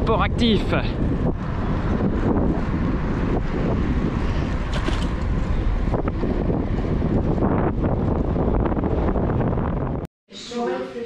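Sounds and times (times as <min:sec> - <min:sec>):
wind buffeting microphone: 0:00.0 - 0:10.1.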